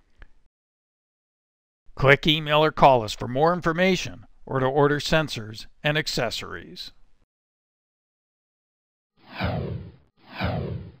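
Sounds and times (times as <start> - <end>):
downward whoosh effect: 9.3 - 11.0.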